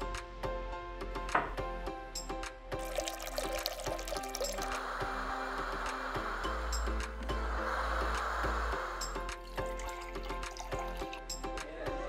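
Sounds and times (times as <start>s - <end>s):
background music: 0.0s - 12.0s
water running from a tap into a pot: 2.8s - 7.4s, 8.0s - 11.4s.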